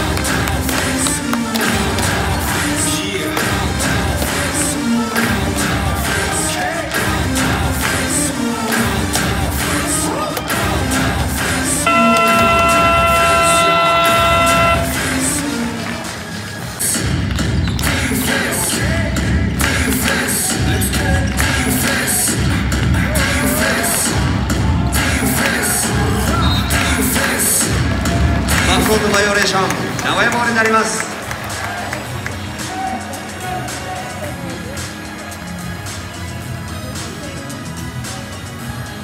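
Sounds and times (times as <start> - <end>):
arena music with steady beat: 0.0 - 39.0
crowd noise: 0.0 - 39.0
electronic horn tone: 11.9 - 15.3.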